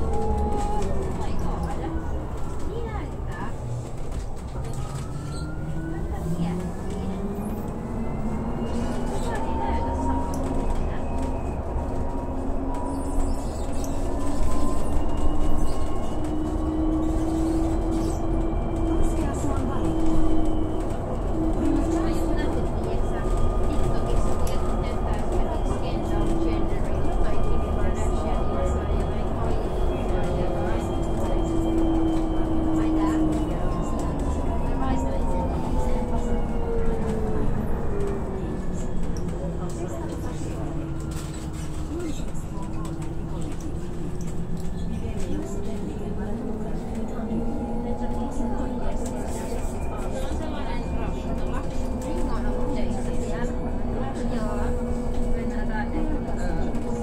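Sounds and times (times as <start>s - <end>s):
wheels rumbling on road: 0.0s - 50.8s.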